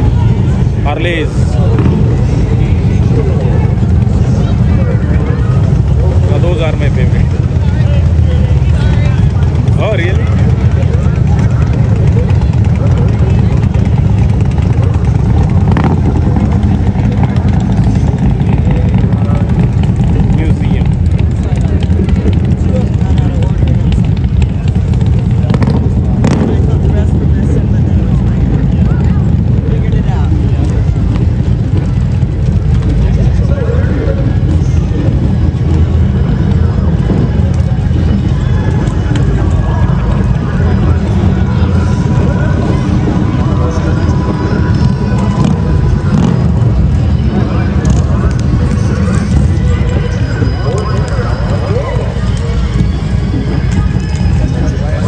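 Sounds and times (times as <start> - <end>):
motorcycle engines rumbling: 0.0 - 55.0.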